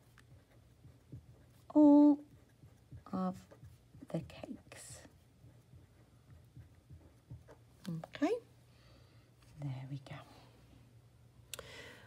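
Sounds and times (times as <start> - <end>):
woman speaking softly: 1.7 - 2.3, 3.0 - 5.1, 7.8 - 8.5, 9.5 - 10.5.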